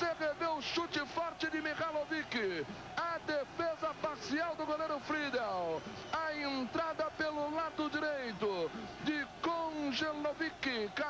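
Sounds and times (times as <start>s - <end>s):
football commentator talking: 0.0s - 11.0s.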